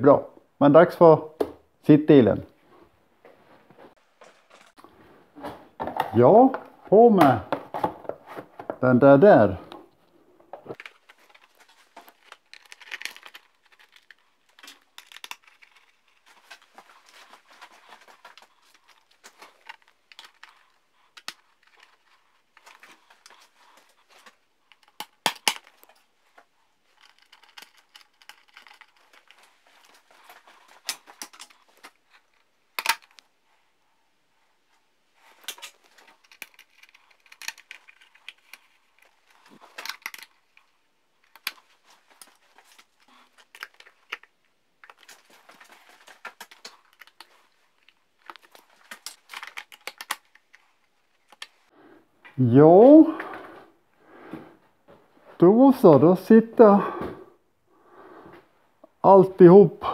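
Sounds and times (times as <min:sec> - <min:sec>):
plastic parts rustling and scraping: 0:03.3 - 0:08.8, 0:09.8 - 0:52.2.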